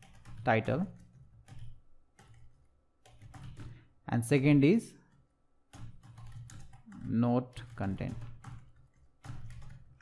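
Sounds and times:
computer keyboard typing: 0.0s - 3.9s, 5.1s - 10.0s.

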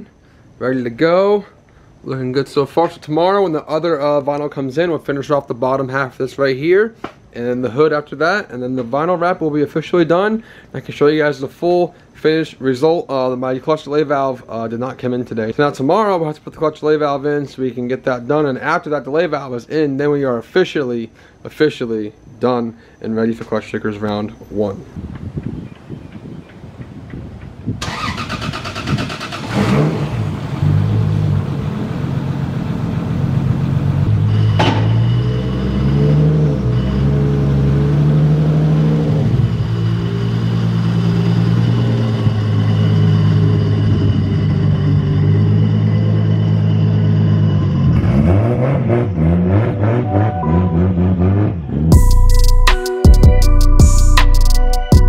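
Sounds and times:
engine starter cranking: 27.8s - 30.2s
engine revving: 27.8s - 52.3s
car engine idling: 30.1s - 47.8s.

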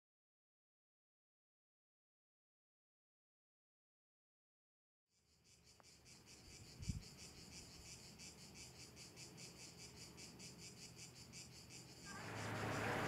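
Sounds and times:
insects chirping: 5.1s - 13.0s.

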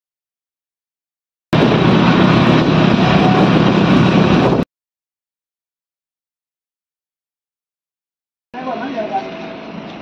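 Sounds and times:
road and wind noise: 1.5s - 4.7s, 8.6s - 10.0s
vehicle engine running: 1.6s - 4.6s.

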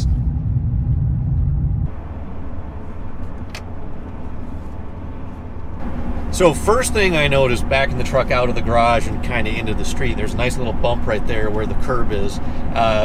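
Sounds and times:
road and drivetrain rumble: 0.0s - 13.0s
light road noise: 1.9s - 13.0s.

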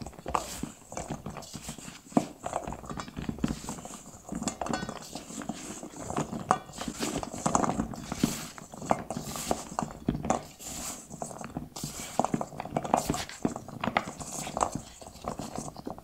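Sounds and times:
cookies knocking in a steel bowl: 0.0s - 16.0s.

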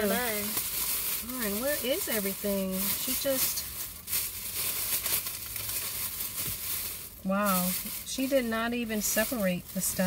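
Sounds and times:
shopping bag rustling: 0.0s - 10.0s.

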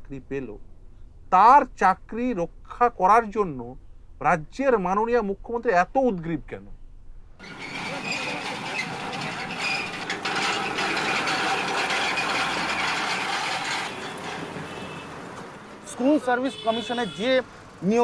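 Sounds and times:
passing street traffic: 6.7s - 18.0s.

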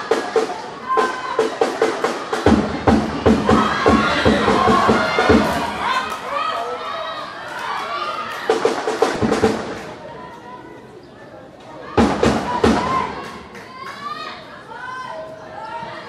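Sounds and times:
drums beaten in short groups: 0.0s - 6.0s, 8.5s - 10.0s, 12.0s - 13.5s
voices shouting and chanting: 0.0s - 16.0s.

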